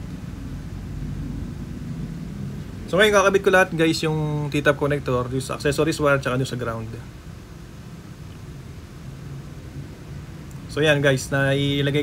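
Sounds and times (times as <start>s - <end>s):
faint hum: 0.0s - 12.0s
low background rumble: 0.0s - 12.0s.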